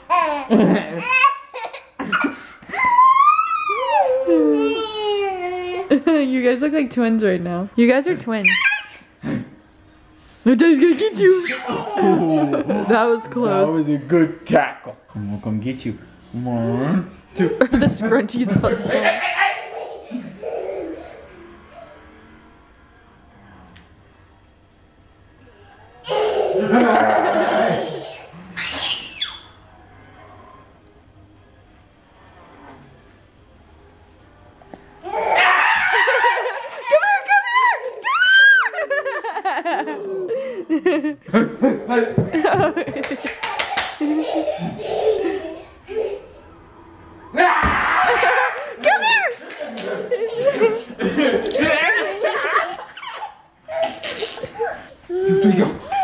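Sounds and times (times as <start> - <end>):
toddler laughing: 0.1 - 6.0, 8.4 - 9.0, 11.4 - 12.9, 18.6 - 21.6, 26.1 - 29.3, 35.1 - 39.0, 39.7 - 40.5, 41.7 - 46.4, 48.0 - 56.0
toddler squealing: 2.8 - 4.3, 8.4 - 9.0, 28.6 - 29.5.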